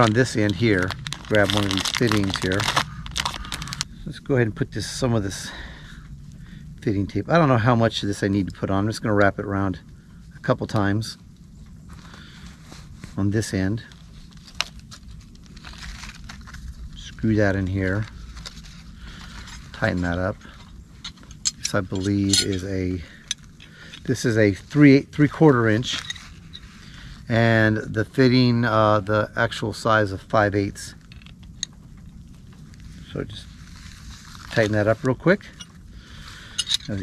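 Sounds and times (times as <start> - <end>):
thread tape crinkling: 0.0 - 3.9, 13.8 - 24.8, 30.9 - 37.0
low steady rumble: 0.0 - 37.0.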